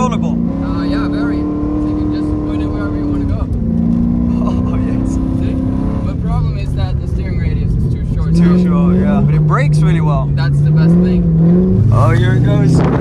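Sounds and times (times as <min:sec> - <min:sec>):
car engine under load: 0:00.0 - 0:13.0.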